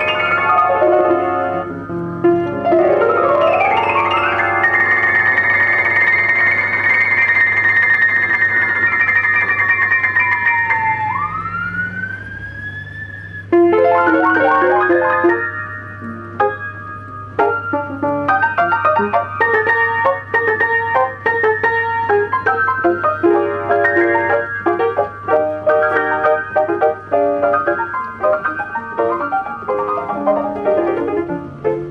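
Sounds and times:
player piano playing: 0.0s - 31.9s.

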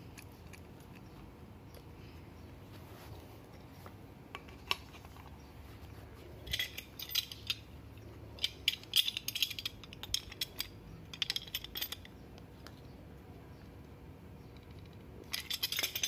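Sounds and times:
metal tools clicking and clinking: 6.4s - 12.2s, 14.5s - 16.0s.

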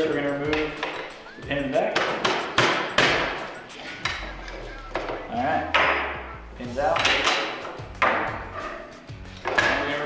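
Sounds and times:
metal rod striking metal pin: 1.9s - 6.3s, 6.9s - 8.4s.

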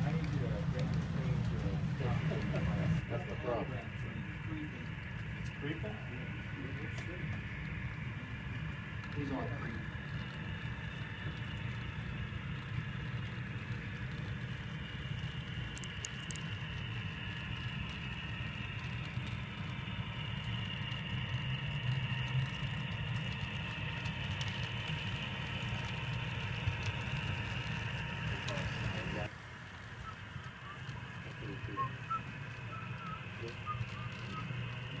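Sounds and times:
model locomotive rumble and whine: 0.0s - 35.0s.

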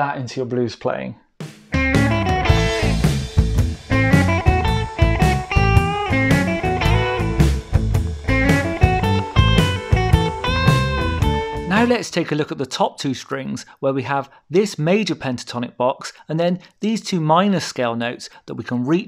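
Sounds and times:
backing track with bass and drums: 1.4s - 12.0s
electric guitar blues lead: 1.8s - 12.0s.

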